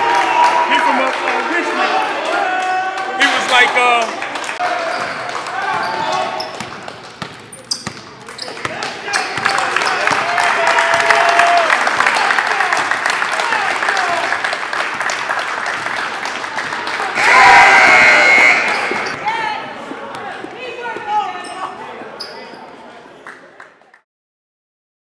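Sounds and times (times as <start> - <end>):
crowd noise echoing: 0.0 - 24.0
basketball bouncing on wooden floor: 5.7 - 8.1
loud burst of noise: 17.2 - 19.2.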